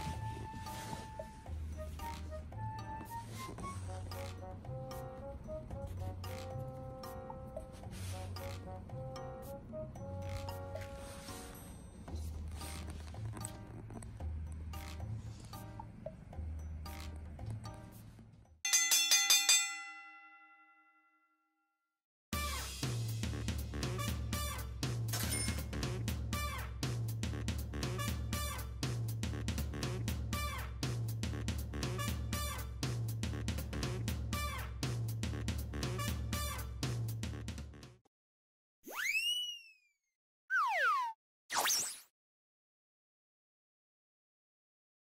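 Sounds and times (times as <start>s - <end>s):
background music: 0.0s - 18.5s, 22.4s - 38.0s
cartoon pitch sweep effects: 38.9s - 39.9s, 40.5s - 42.1s.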